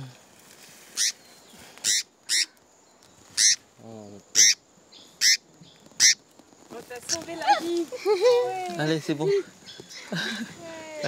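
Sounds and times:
small bird high sharp calls: 0:00.9 - 0:06.3.

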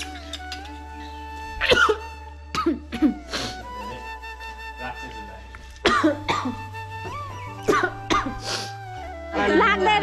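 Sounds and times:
soft background music: 0:00.0 - 0:10.0
cough-like vocal burst: 0:01.6 - 0:02.0, 0:05.9 - 0:06.6, 0:07.7 - 0:08.4.

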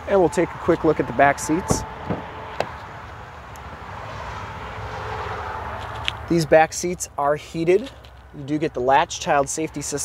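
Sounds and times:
outdoor rumble and hiss: 0:00.0 - 0:10.0.

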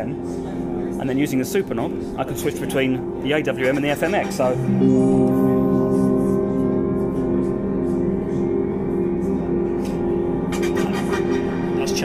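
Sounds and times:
synthesizer sustained chord: 0:00.0 - 0:12.0.

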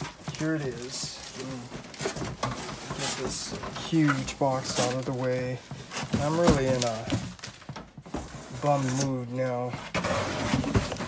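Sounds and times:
plastic packaging crinkling: 0:00.0 - 0:08.0.

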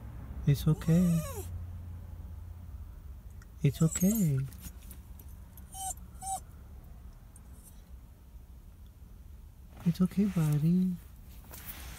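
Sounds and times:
small dog whining: 0:00.7 - 0:01.5, 0:03.7 - 0:04.5, 0:05.7 - 0:06.4.

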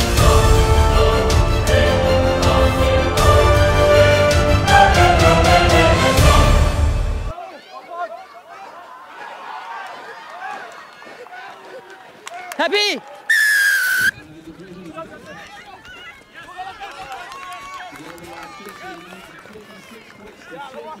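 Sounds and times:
shouts and chatter of people: 0:07.3 - 0:14.2, 0:15.2 - 0:21.0
referee's whistle blast: 0:13.3 - 0:14.1
short rising call: 0:13.3 - 0:14.1.

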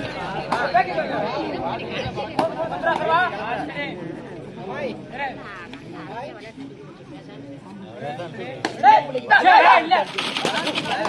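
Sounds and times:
voices talking over each other: 0:00.0 - 0:11.0.

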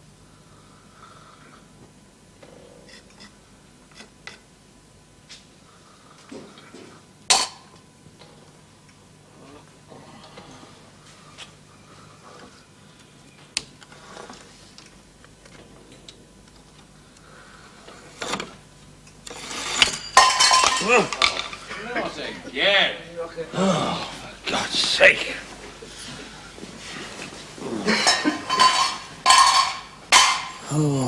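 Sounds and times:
man gasping and grunting: 0:23.5 - 0:24.2, 0:30.6 - 0:31.0
bedding rustling: 0:24.2 - 0:29.8.

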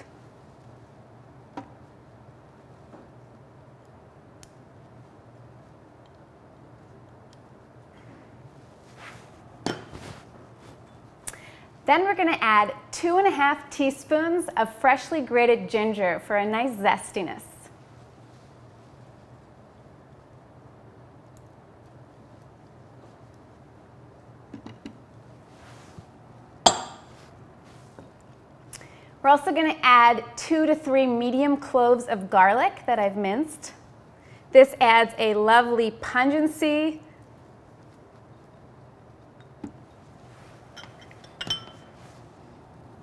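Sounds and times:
soft brushing: 0:04.7 - 0:11.2, 0:17.7 - 0:20.7, 0:21.8 - 0:24.4, 0:25.0 - 0:28.6, 0:36.6 - 0:43.0
utensil clinking on bowl: 0:40.7 - 0:42.0.

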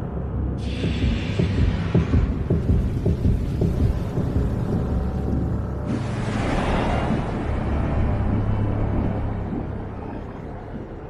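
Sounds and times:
deep pulsing rumble: 0:00.0 - 0:11.0.

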